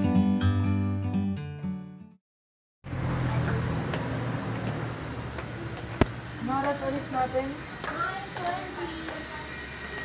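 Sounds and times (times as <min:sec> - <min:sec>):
low urban rumble: 0:02.8 - 0:10.0.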